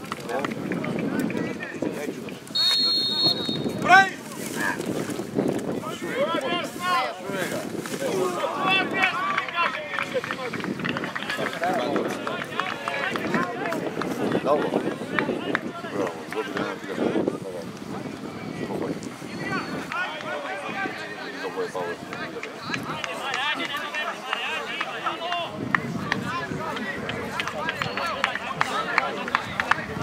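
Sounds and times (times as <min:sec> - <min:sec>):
crowd shouting and cheering: 0:00.0 - 0:04.8, 0:05.7 - 0:30.0
referee's whistle: 0:02.5 - 0:03.8.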